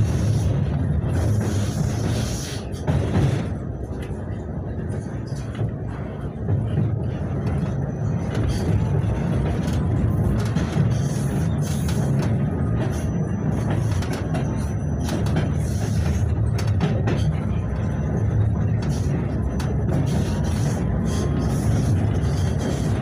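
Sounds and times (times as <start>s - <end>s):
tram wheels rumbling on rails: 0.0s - 23.0s.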